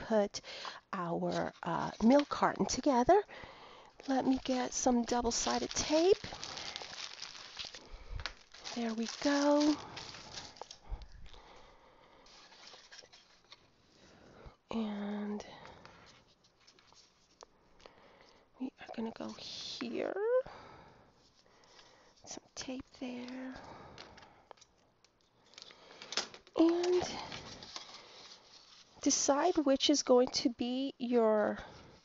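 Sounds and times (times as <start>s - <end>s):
soft paper rustle: 1.2s - 3.2s, 3.9s - 11.6s, 12.2s - 14.2s, 15.5s - 17.5s, 21.2s - 30.2s.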